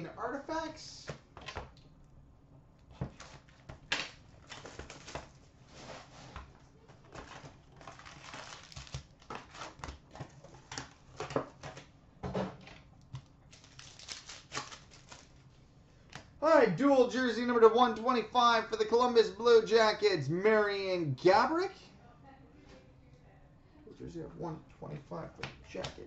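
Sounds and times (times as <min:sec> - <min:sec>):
cardboard and foil rustling: 0:04.4 - 0:11.9, 0:13.5 - 0:15.4.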